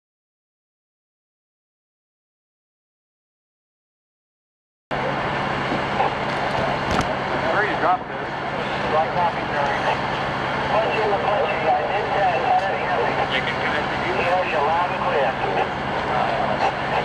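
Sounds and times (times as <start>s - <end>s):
vehicle engines idling: 4.9s - 17.0s
many voices talking: 5.9s - 17.0s.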